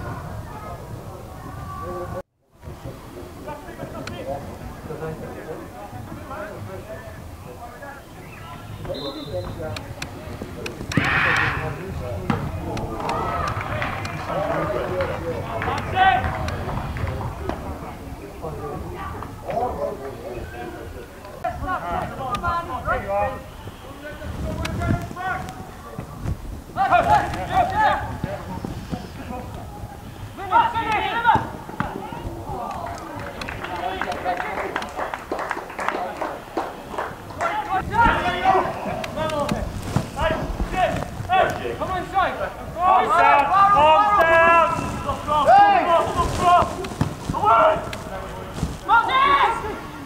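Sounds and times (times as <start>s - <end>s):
people calling and talking: 0.0s - 50.0s
players shouting: 10.9s - 17.8s, 26.8s - 34.8s, 37.1s - 39.6s, 40.2s - 50.0s
football kick thud: 12.2s - 12.6s.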